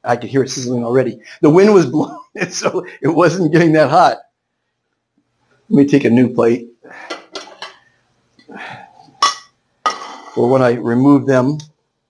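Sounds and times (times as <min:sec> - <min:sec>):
dinner plates clattering: 0:07.0 - 0:07.8, 0:09.1 - 0:10.5
plate scraping on plate: 0:07.0 - 0:07.8, 0:09.0 - 0:10.5.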